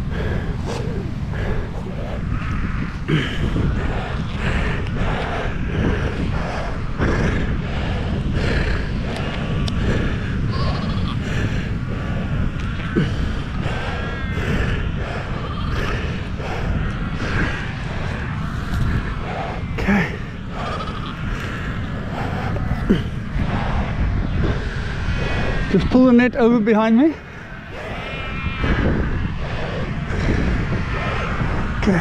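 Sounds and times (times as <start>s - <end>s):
seals calling: 0.0s - 32.0s
wind rumble on microphone: 0.0s - 32.0s.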